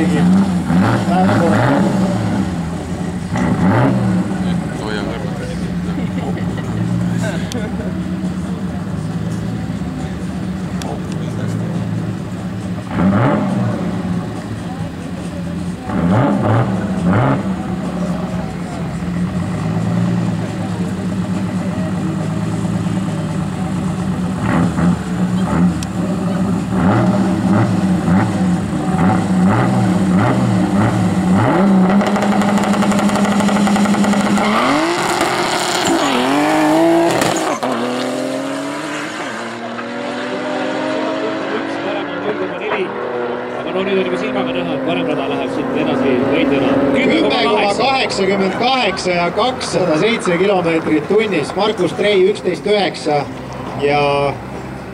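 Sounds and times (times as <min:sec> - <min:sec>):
race car engines revving: 0:00.0 - 0:54.9
race cars accelerating away: 0:00.0 - 0:54.9.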